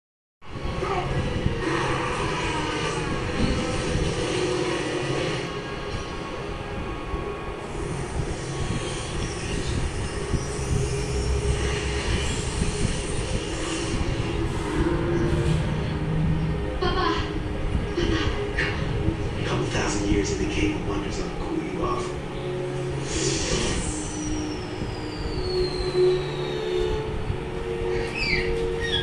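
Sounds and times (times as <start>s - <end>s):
mechanical drone: 0.4s - 29.0s.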